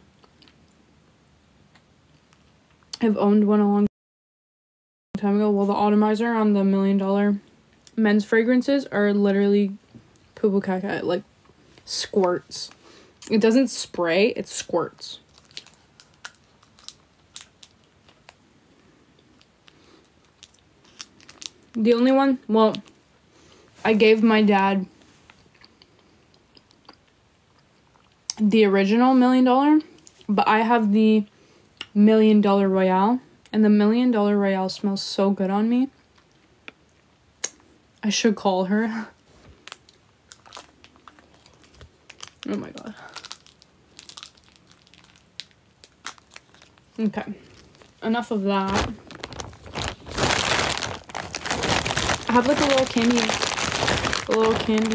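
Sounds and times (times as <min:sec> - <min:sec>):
wrapper crinkling: 0:11.8 - 0:18.4, 0:19.3 - 0:22.9, 0:39.3 - 0:54.9.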